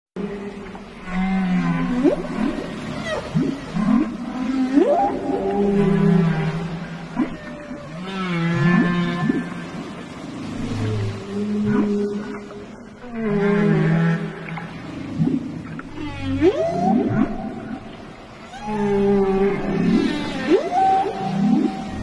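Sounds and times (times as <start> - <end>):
whale calls: 0.2 - 22.0.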